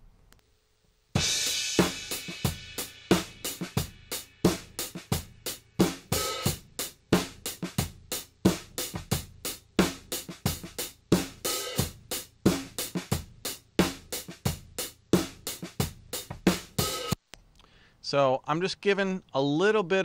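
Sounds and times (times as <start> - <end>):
drum kit groove: 1.1 - 17.2.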